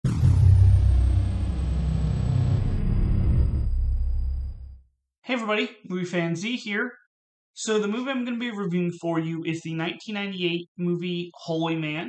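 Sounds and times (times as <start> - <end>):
deep steady rumble: 0.0 - 4.8
faint high tone sliding down: 0.1 - 4.8.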